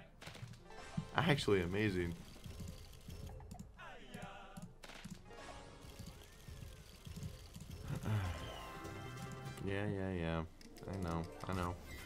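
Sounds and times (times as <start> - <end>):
slot game music: 0.6 - 3.4, 5.2 - 7.2, 8.0 - 10.2.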